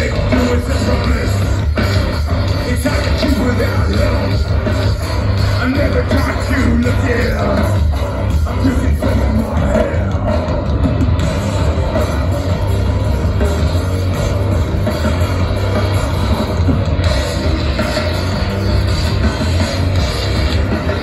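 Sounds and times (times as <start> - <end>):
distorted electric guitar: 0.0 - 21.0
drums: 0.0 - 21.0
live metal band playing: 0.0 - 21.0.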